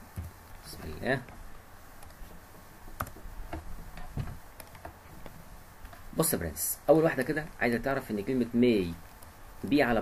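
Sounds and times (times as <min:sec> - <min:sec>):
faint room hiss: 0:00.0 - 0:10.0
computer mouse clicking: 0:02.0 - 0:03.6, 0:04.6 - 0:05.0.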